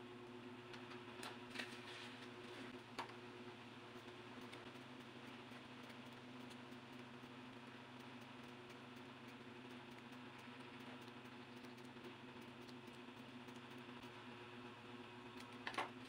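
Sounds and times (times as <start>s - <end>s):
steady low hum: 0.0s - 16.0s
small scissors snipping paper: 4.0s - 14.1s.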